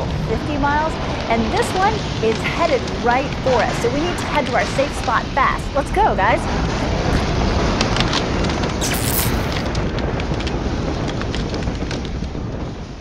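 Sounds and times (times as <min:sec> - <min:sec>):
deep roar of wind: 0:00.0 - 0:13.0
bright crash-like burst: 0:08.8 - 0:09.7.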